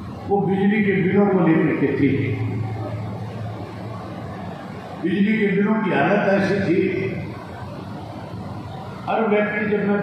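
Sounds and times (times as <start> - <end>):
public address system hum: 0.0 - 10.0.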